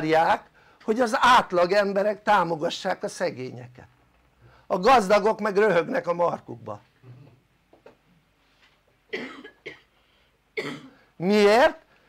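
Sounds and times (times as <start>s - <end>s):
man coughing: 9.1s - 10.0s, 10.6s - 11.1s.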